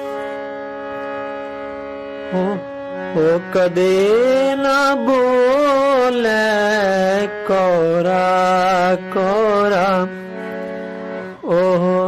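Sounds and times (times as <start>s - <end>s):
harmonium chord: 0.0s - 12.0s.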